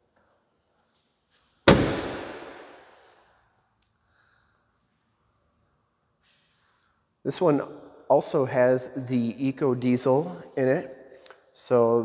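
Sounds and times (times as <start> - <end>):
tailgate slamming shut: 1.7 - 2.3.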